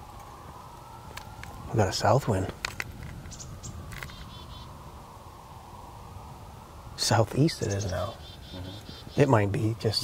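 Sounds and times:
wind blowing across microphone: 0:00.0 - 0:10.0
faint high bird chirps: 0:03.3 - 0:04.8, 0:07.4 - 0:09.5.

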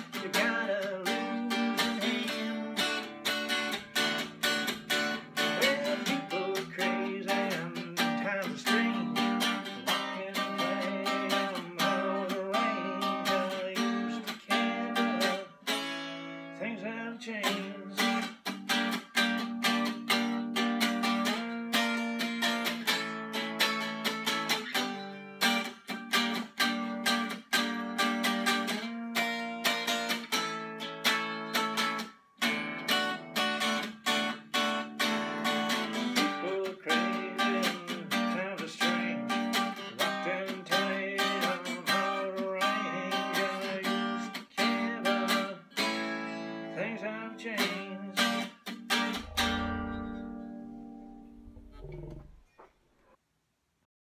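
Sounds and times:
electric guitar playing: 0:00.0 - 0:52.4.

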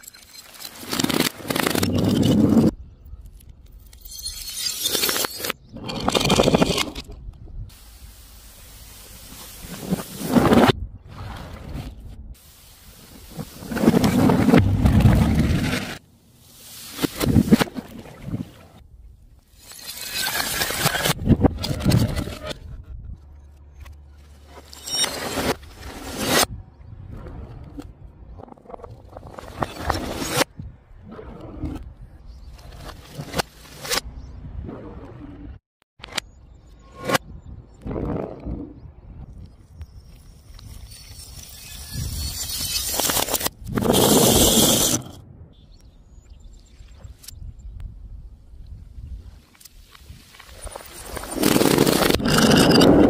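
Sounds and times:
glass jars scraping down ramp: 0:50.9 - 0:53.0.

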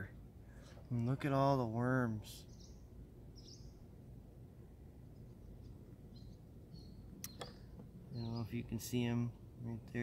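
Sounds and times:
faint bird chirps: 0:02.4 - 0:04.0, 0:05.1 - 0:08.9.

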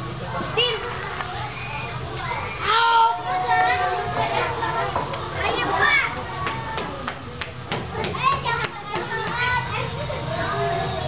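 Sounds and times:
background chatter: 0:00.0 - 0:11.0
children calling and shouting: 0:00.0 - 0:11.0.

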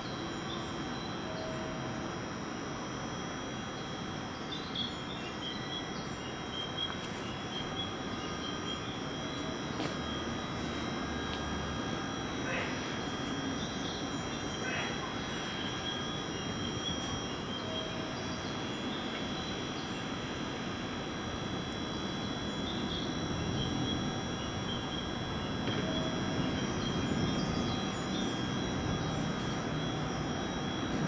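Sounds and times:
electric train rumble: 0:00.0 - 0:31.0
high whine: 0:00.0 - 0:31.0.

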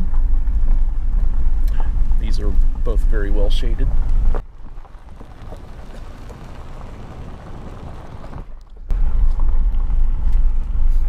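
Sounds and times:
vehicle driving on gravel: 0:03.4 - 0:10.8.

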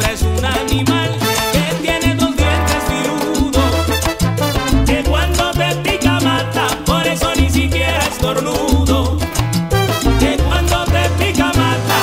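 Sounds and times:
salsa orchestra music: 0:00.0 - 0:12.0.

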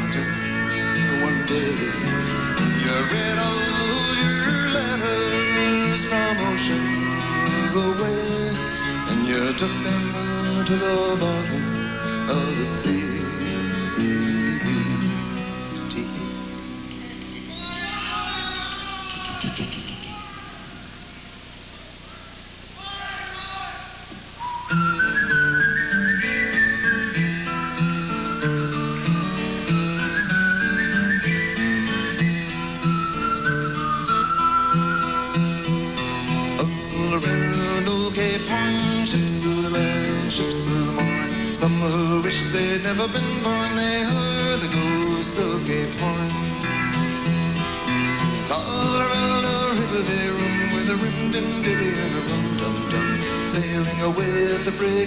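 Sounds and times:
live folk-rock band playing: 0:00.0 - 0:19.9, 0:24.4 - 0:55.0
whistled melody: 0:00.0 - 0:20.1, 0:24.4 - 0:53.6
picked acoustic guitar: 0:00.0 - 0:22.9, 0:24.1 - 0:55.0
bass: 0:00.0 - 0:55.0.

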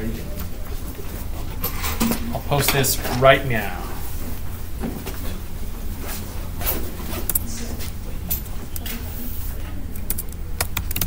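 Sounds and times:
steady low hum: 0:00.0 - 0:11.0
rasping and clicking noises: 0:06.6 - 0:11.0.

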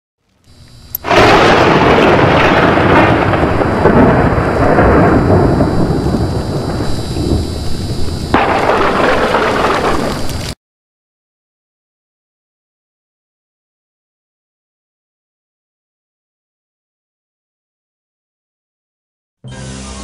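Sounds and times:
rain-like hiss: 0:00.6 - 0:10.6
thunder rumble and crash: 0:01.0 - 0:10.6.

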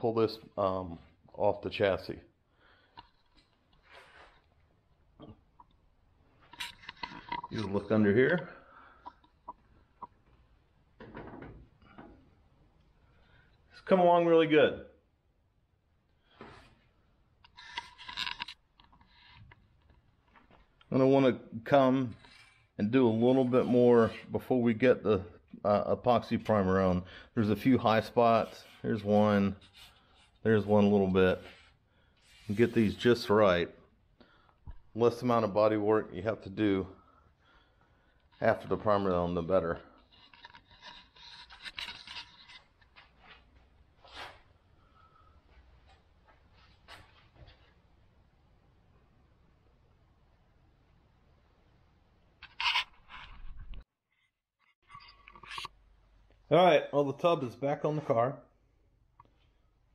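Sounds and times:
faint scraping and rubbing: 0:00.1 - 0:10.2, 0:16.2 - 0:33.6, 0:34.2 - 0:47.8, 0:52.4 - 0:55.8.

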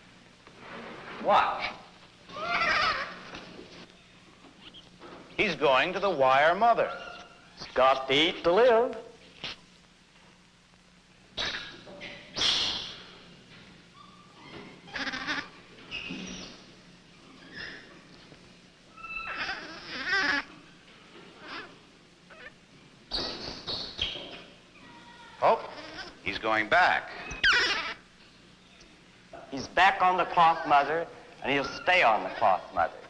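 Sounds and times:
infant monkey crying: 0:02.3 - 0:03.3, 0:14.0 - 0:15.6, 0:18.9 - 0:20.6, 0:21.4 - 0:22.6, 0:24.8 - 0:26.2, 0:27.1 - 0:28.1.

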